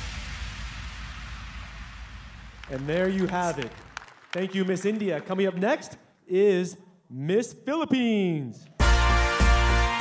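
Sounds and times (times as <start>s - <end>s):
audience applauding: 2.6s - 5.9s.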